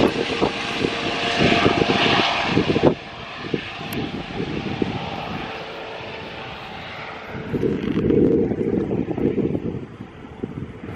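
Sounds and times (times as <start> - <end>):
helicopter rotor and engine: 0.0 - 10.9
wind buffeting microphone: 0.0 - 10.9.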